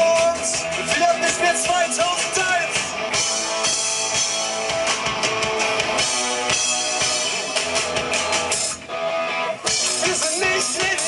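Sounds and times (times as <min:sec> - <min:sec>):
drum kit: 0:00.0 - 0:08.9, 0:09.6 - 0:11.0
bass guitar: 0:00.0 - 0:11.0
electric guitars: 0:00.0 - 0:11.0.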